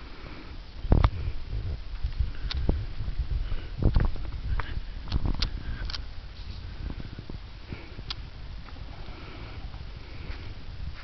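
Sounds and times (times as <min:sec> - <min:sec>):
camera handling rumble: 0:03.8 - 0:06.7.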